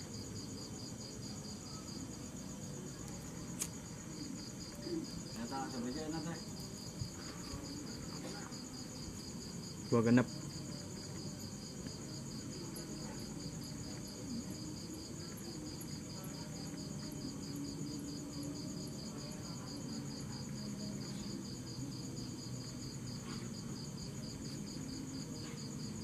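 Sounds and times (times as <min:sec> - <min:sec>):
crickets chirping: 0:00.0 - 0:26.0.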